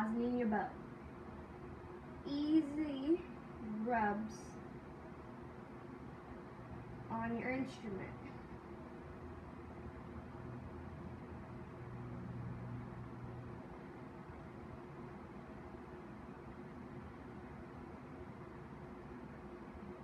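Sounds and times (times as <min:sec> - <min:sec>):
background hum and hiss: 0:00.0 - 0:20.0.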